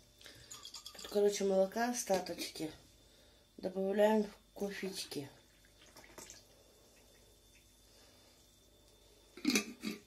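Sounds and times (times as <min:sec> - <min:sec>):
milk trickling into glass: 0:00.3 - 0:01.2.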